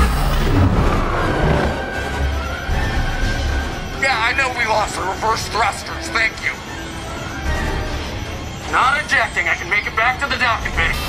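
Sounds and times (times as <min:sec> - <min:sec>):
deep spacecraft rumble: 0:00.0 - 0:11.0
dramatic score music: 0:00.0 - 0:11.0.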